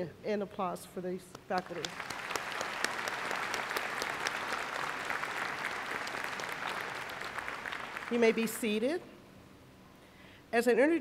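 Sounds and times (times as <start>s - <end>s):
audience applauding: 1.6s - 8.8s.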